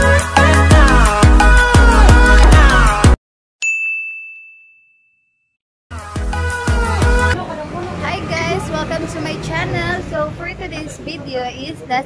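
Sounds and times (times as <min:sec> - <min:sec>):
bell-like notification ding: 0:03.6 - 0:05.5.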